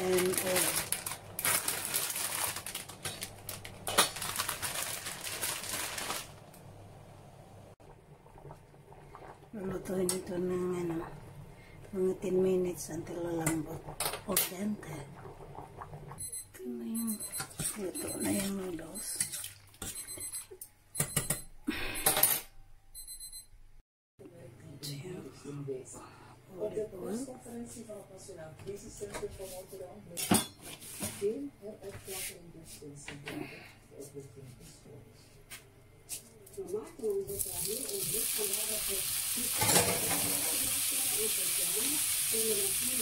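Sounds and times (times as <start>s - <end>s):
water bubbles crackling: 13.2s - 16.2s.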